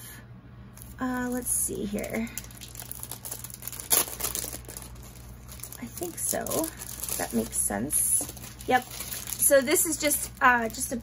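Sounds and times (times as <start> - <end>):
plastic packaging crinkling: 0.8 - 11.0.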